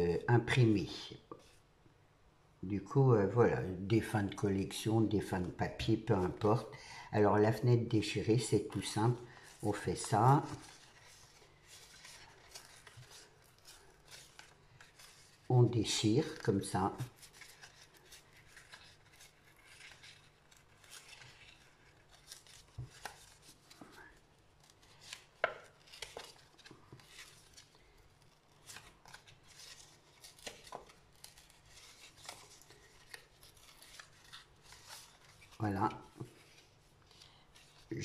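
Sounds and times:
paper crackle: 7.9s - 38.0s
paper tearing: 8.5s - 38.0s.

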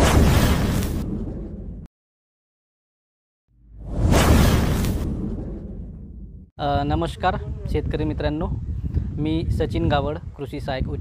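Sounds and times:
whoosh with low rumble: 3.7s - 6.5s.

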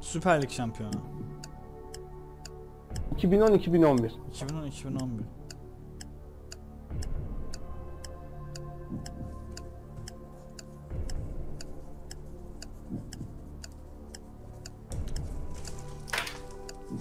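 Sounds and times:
background music with low pulse: 0.0s - 17.0s
countdown clock ticking: 0.0s - 17.0s.

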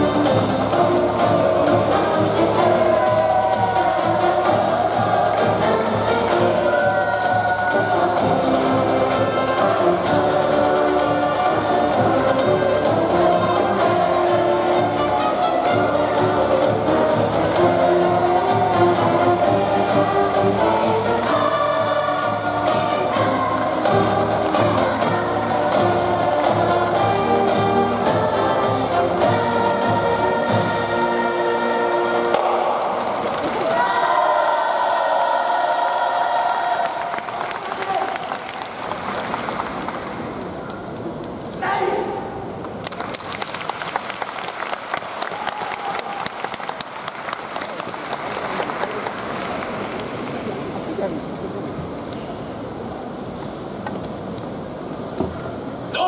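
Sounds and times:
upbeat band music: 0.0s - 32.3s
voices chanting: 0.7s - 36.8s.

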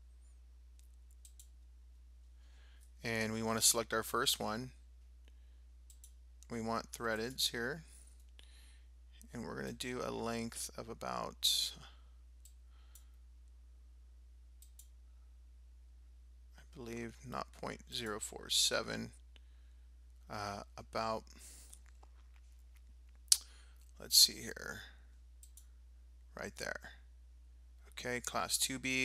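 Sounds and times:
low steady hum: 0.0s - 29.0s
computer mouse clicks: 0.8s - 1.6s, 5.9s - 6.2s, 14.6s - 15.0s, 25.4s - 25.7s.

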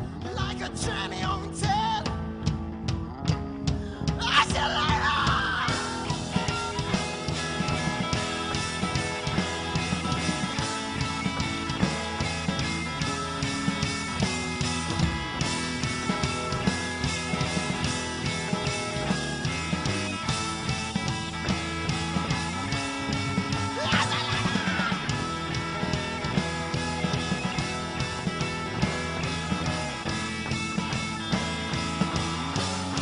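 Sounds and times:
drum kit steady beat: 0.0s - 33.0s
electric guitar: 0.0s - 33.0s.

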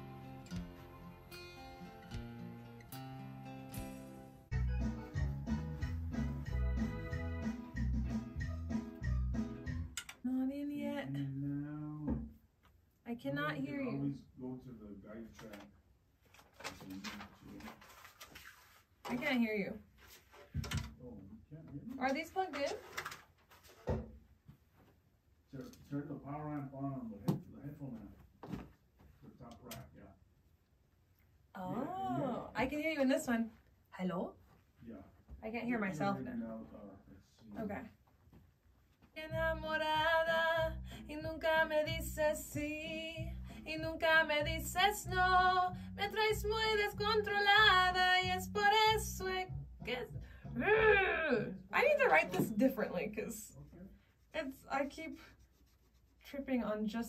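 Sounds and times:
woman singing: 39.2s - 52.6s.

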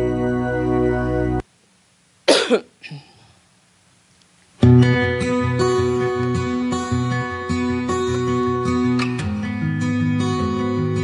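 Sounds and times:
woman coughing: 2.3s - 3.2s.

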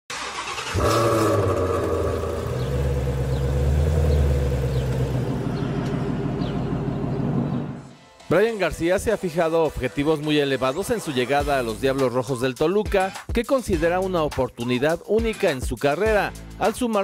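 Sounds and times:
low rumbling drone: 0.8s - 7.9s.

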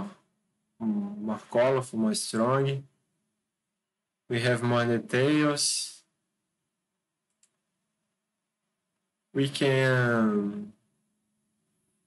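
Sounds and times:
faint computer mouse click: 7.3s - 7.6s.

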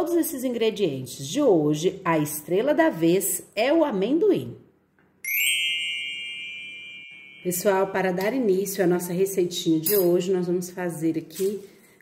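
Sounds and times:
bright chime ding: 5.2s - 8.2s.

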